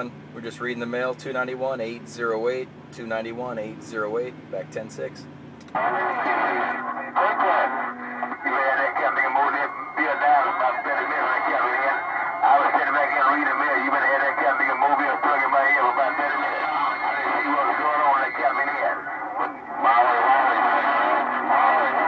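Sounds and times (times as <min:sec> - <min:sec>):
radio speech through speaker: 0:00.0 - 0:22.0.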